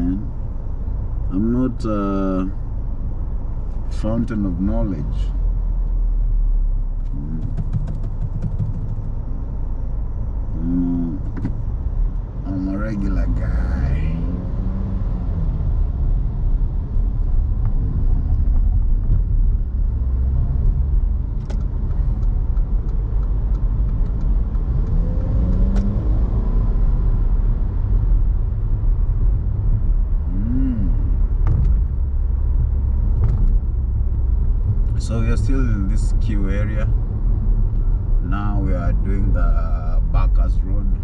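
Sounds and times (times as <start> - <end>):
car engine and tyre rumble: 0.0 - 41.0.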